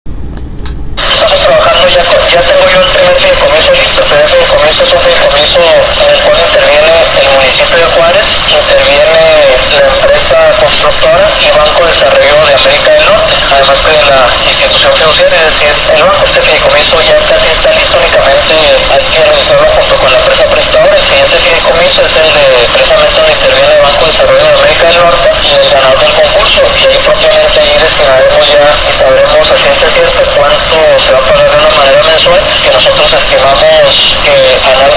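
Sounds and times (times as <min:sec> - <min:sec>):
radio news speech: 0:01.0 - 0:34.9.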